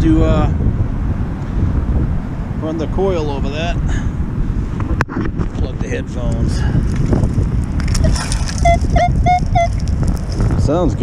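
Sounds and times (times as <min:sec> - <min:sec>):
wind rumbling on microphone: 0:00.0 - 0:11.0
metal detector beeps: 0:08.6 - 0:09.7.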